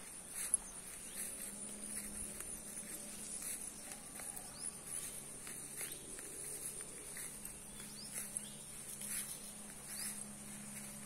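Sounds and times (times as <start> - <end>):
faint low hum: 0.0 - 11.0
high-pitched insect chorus: 0.0 - 11.0.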